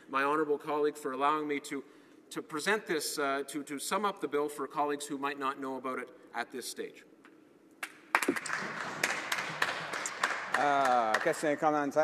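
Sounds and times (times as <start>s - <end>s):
people clapping: 7.8s - 12.0s.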